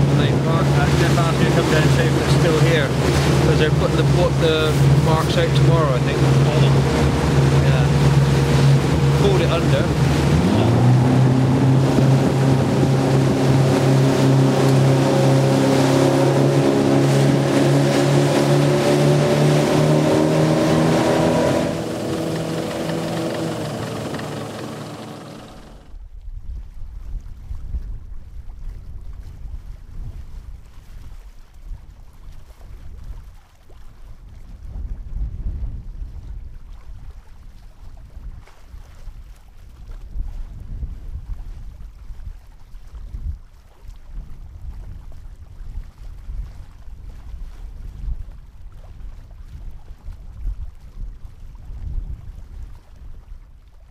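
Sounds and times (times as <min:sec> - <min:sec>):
water rushing: 0:00.0 - 0:25.9
boat engine running: 0:00.0 - 0:26.0
wind rumble on microphone: 0:00.0 - 0:53.9.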